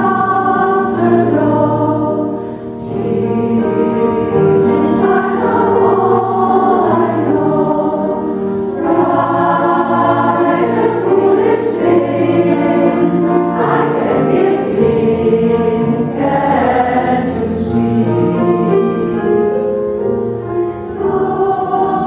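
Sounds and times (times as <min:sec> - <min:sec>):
choir singing in harmony: 0:00.0 - 0:22.0.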